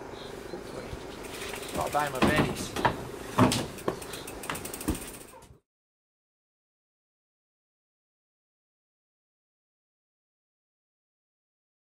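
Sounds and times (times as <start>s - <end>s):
bike clunking against van floor: 1.9s - 5.2s.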